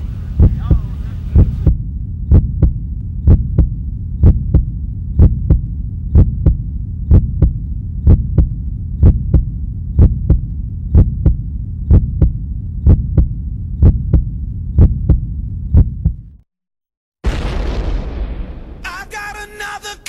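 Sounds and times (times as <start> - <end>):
steady low hum: 0.0 - 16.4
deep heartbeat-like double thump: 0.4 - 16.4.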